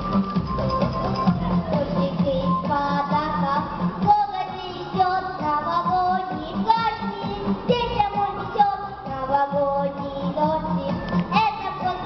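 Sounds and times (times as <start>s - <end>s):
backing track with steady beat: 0.0s - 12.0s
girl singing into microphone: 1.4s - 12.0s.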